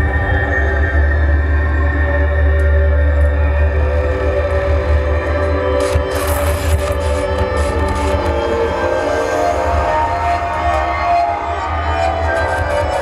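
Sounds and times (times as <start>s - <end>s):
deep low drone: 0.0s - 13.0s.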